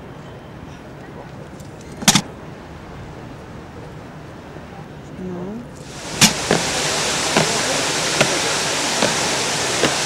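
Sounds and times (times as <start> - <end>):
watching crowd: 5.9 - 10.0
doubled knock on stone paving: 6.2 - 7.6, 9.0 - 10.0.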